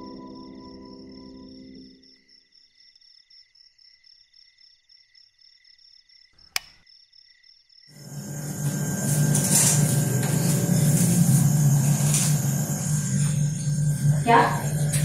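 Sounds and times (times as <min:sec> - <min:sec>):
crickets chirping: 0:00.0 - 0:15.0
sharp click: 0:06.5 - 0:06.8
steady low drone: 0:08.0 - 0:15.0.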